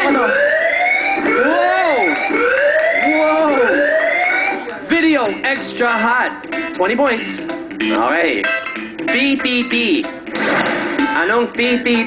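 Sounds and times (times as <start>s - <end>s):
whooping electronic siren: 0.0s - 4.8s.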